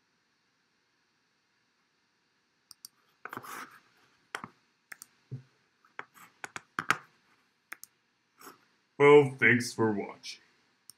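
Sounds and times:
sharp clicks and light taps: 4.3s - 5.2s, 7.7s - 7.9s.

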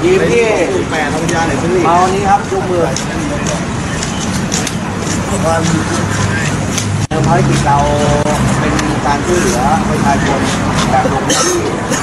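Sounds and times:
man speaking: 0.0s - 3.9s, 5.0s - 12.0s.

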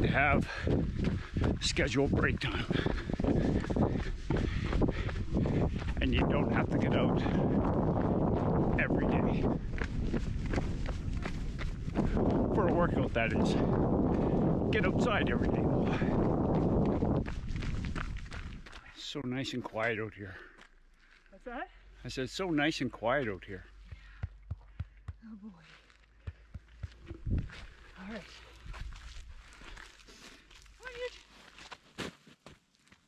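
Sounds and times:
wind rumble on microphone: 0.0s - 18.8s, 26.8s - 27.8s, 28.6s - 29.7s
running footsteps on pavement: 0.0s - 21.8s, 22.4s - 33.0s.

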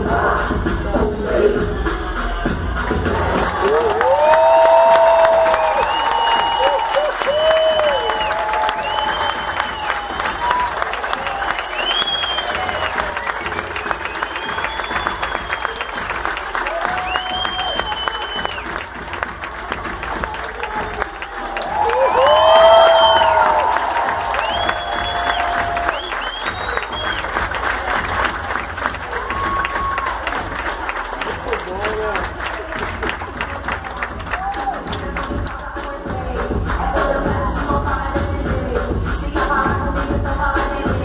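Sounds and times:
audience applauding: 3.1s - 35.7s
whoops and cheers: 3.4s - 18.8s, 19.6s - 27.4s, 29.0s - 30.5s, 34.2s - 35.0s.

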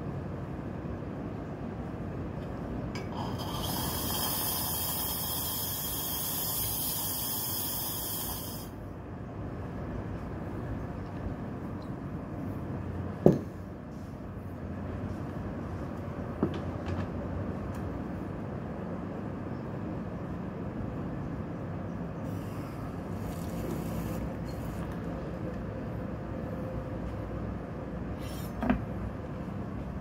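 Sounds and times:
espresso machine hissing: 3.1s - 8.8s.

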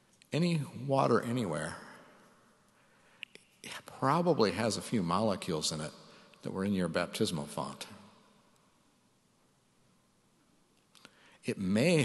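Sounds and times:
man speaking: 0.4s - 1.9s, 3.6s - 8.0s, 11.5s - 12.0s.

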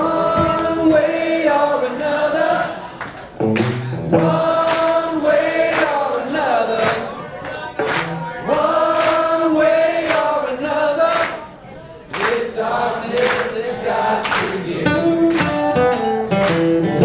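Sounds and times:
voices singing chorus: 0.0s - 3.1s, 4.1s - 15.3s
handclaps: 3.0s - 4.0s, 4.6s - 5.0s, 5.7s - 6.2s, 6.8s - 8.2s, 9.0s - 9.3s, 10.0s - 10.3s, 11.1s - 11.4s, 12.1s - 12.4s, 13.2s - 13.6s, 14.2s - 17.0s
electric guitar: 3.4s - 4.4s, 14.9s - 17.0s.

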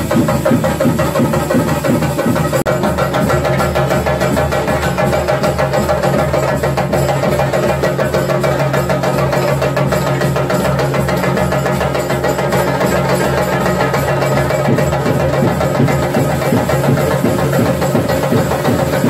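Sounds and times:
drums beaten with sticks: 0.0s - 19.0s.

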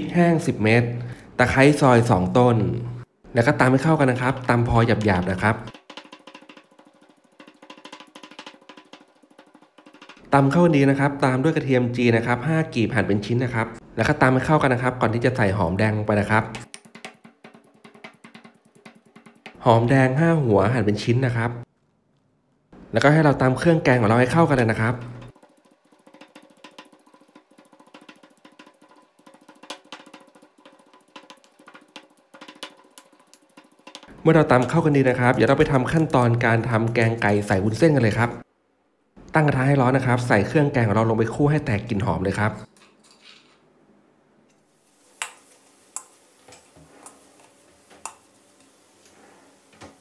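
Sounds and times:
pestle pounding in stone mortar: 4.0s - 10.3s, 16.5s - 19.7s, 24.0s - 36.4s.

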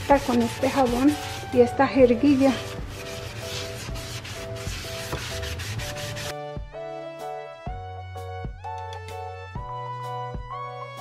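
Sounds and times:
cloth scrubbing a sink: 0.0s - 6.3s
soft background music: 0.0s - 11.0s.

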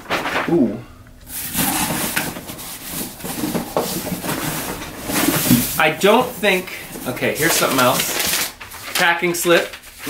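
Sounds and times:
hands rummaging in cardboard box: 1.3s - 9.7s.

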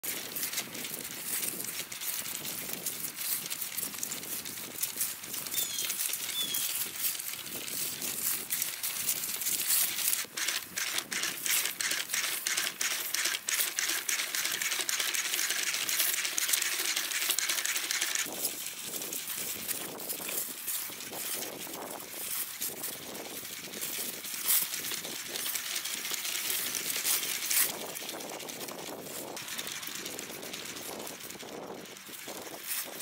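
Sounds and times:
robot dog feet clicking and tapping: 0.0s - 18.6s.

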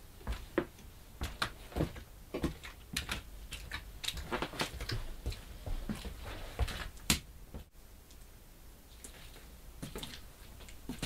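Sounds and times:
soft knocks scuffs and shuffles: 0.2s - 7.7s.

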